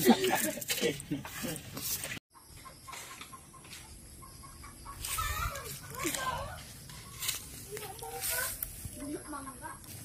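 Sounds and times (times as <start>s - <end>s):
chicken clucking: 2.4s - 9.9s.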